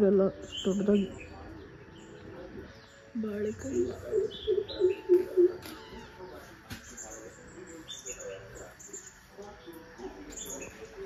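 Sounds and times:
low evenly spaced notes: 0:00.0 - 0:05.8
birds chirping: 0:00.0 - 0:11.0.

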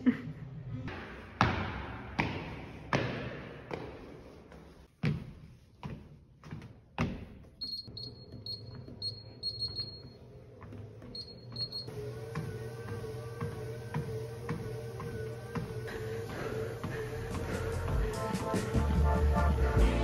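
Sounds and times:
footsteps on treadmill belt: 0:01.5 - 0:19.2
background music with held tone: 0:11.4 - 0:20.0.

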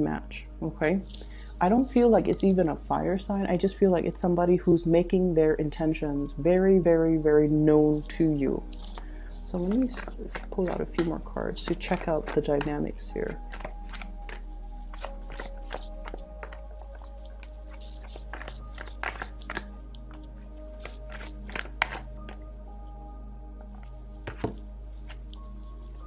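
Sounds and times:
soft background music: 0:00.0 - 0:26.0
cards being shuffled: 0:08.7 - 0:22.4, 0:24.2 - 0:25.5.

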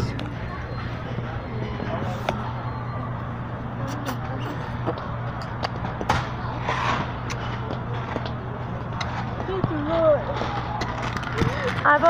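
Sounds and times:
steady low hum: 0:00.0 - 0:12.0
voices: 0:00.0 - 0:12.0.

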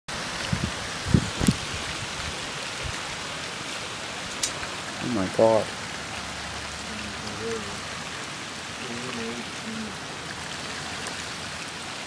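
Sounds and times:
heavy rain hiss: 0:00.1 - 0:12.0.

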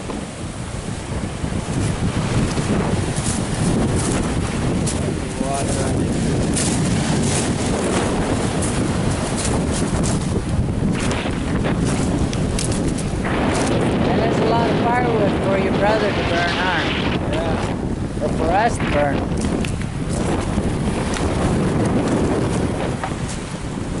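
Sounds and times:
surf on pebble beach: 0:00.0 - 0:24.0
wind buffeting microphone: 0:00.0 - 0:24.0
person speaking: 0:14.0 - 0:19.3.

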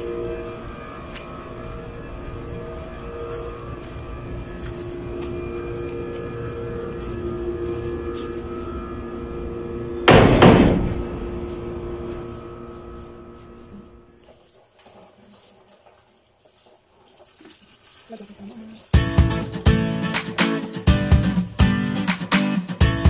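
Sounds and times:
background hum: 0:00.0 - 0:22.0
door shutting with a bang: 0:10.1 - 0:11.4.

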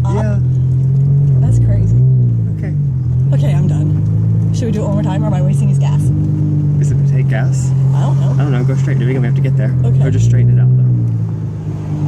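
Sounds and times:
car engine drone inside cabin: 0:00.0 - 0:12.0.

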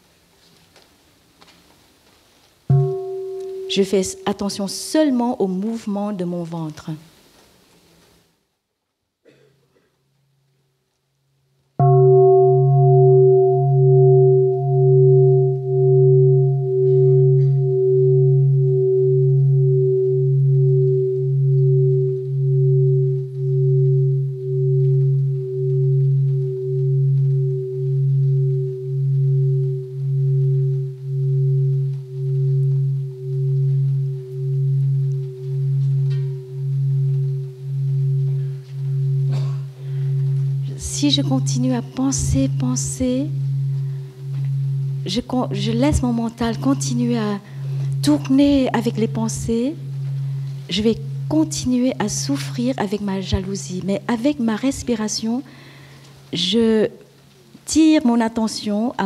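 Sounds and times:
bowl bell ringing: 0:02.7 - 0:05.2, 0:11.8 - 0:55.2.

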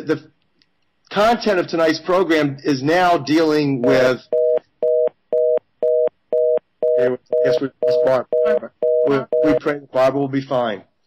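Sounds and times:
telephone busy tone beeping: 0:04.3 - 0:09.6.

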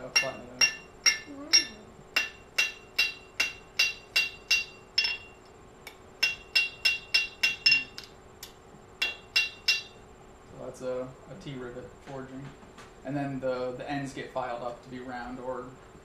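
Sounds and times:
hammer striking iron on anvil: 0:00.0 - 0:08.1, 0:09.0 - 0:10.0.

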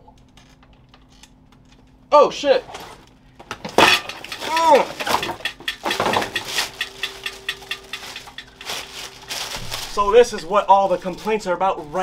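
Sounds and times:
rustling of person moving: 0:04.3 - 0:11.6.

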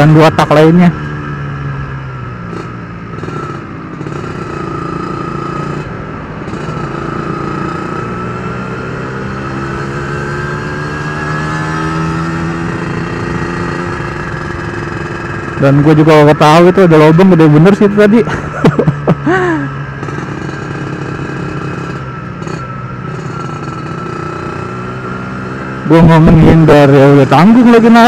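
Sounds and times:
two-stroke motorcycle engine: 0:00.0 - 0:28.0.

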